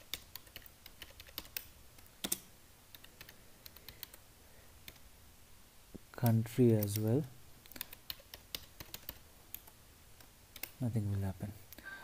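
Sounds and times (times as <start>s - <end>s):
typing on computer keyboard: 0.0s - 4.2s, 7.7s - 9.7s.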